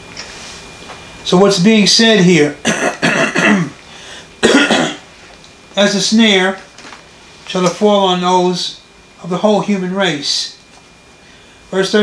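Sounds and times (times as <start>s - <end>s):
man clearing his throat: 2.6s - 3.8s, 4.4s - 5.1s.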